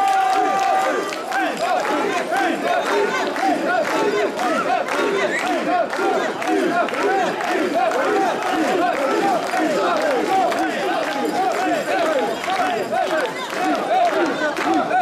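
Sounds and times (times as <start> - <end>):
men chanting rhythmic calls: 0.1 - 15.0.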